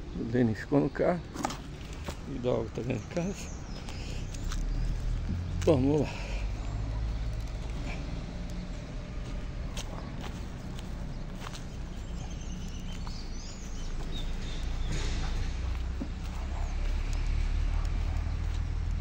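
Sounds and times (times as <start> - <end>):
footsteps in grass and dirt: 1.3 - 19.0.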